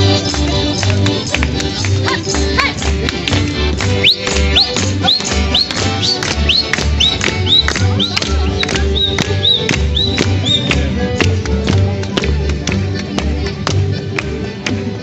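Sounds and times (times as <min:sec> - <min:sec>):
street band playing upbeat instrumental: 0:00.0 - 0:15.0.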